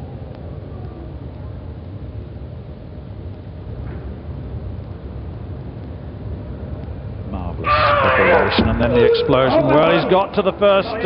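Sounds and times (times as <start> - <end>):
low steady arena rumble: 0.0 - 11.0.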